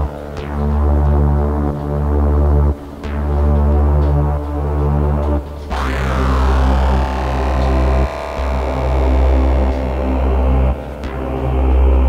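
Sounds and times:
layered synth tones: 0.0s - 12.0s
synth sub-bass: 0.0s - 12.0s.

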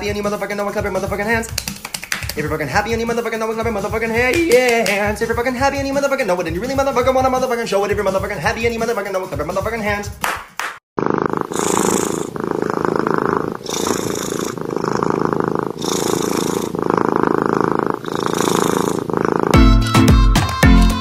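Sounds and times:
cat purring loudly: 11.0s - 19.7s
music with strong bass: 19.6s - 21.0s.

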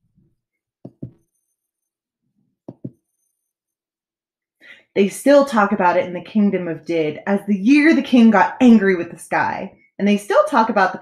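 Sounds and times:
soft thumps: 0.9s - 1.2s, 2.7s - 3.0s
short breath: 4.6s - 4.9s
woman speaking: 4.9s - 11.0s.

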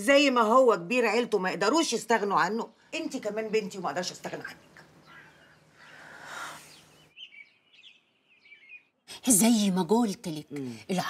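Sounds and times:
birds chirping: 0.0s - 11.0s
soft rushing hiss: 4.7s - 7.1s.

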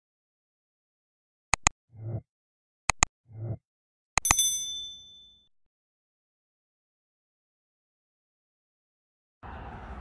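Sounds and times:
mouse clicks: 1.5s - 1.8s, 2.9s - 3.1s
notification bell ding: 4.2s - 5.4s.

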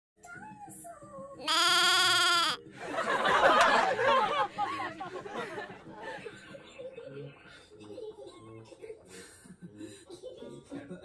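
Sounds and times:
bleat-like animal call: 1.4s - 2.6s.

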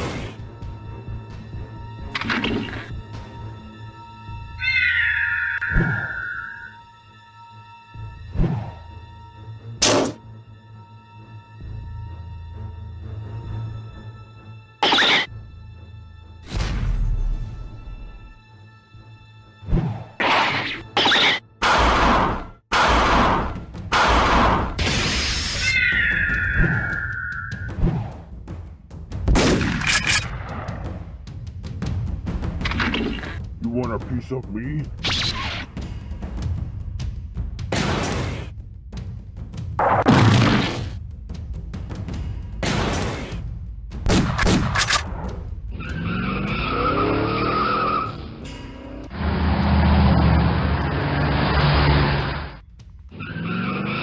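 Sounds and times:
background music: 0.0s - 54.0s
high creature shriek: 4.6s - 6.8s, 25.4s - 27.7s.

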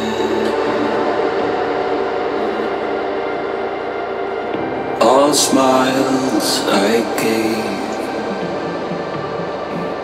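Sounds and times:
sustained synth drone: 0.0s - 10.0s.

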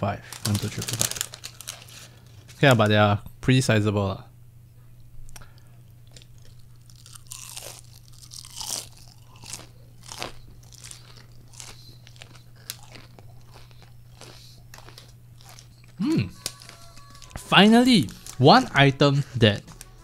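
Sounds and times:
crunchy food chewing: 5.3s - 17.4s.

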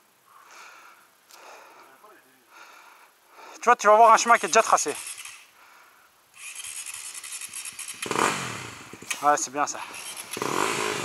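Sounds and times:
motorcycle engine idling: 6.6s - 11.0s.

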